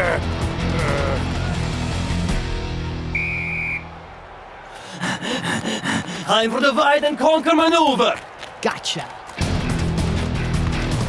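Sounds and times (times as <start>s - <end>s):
cartoon soundtrack music: 0.0s - 3.1s
referee's whistle blast: 3.1s - 4.0s.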